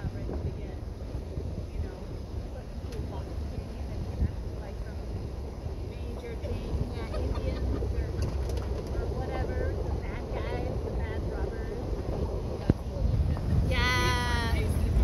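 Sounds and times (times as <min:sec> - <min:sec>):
vehicle rumbling on dirt road: 0:00.0 - 0:15.0.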